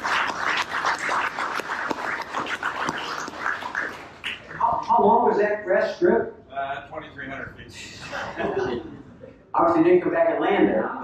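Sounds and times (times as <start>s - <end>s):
hands clapping: 0.0s - 4.7s.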